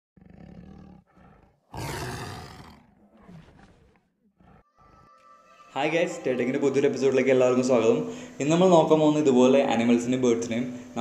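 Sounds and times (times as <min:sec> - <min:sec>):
tiger roaring: 0:00.2 - 0:05.7
tiger growling: 0:00.2 - 0:05.8.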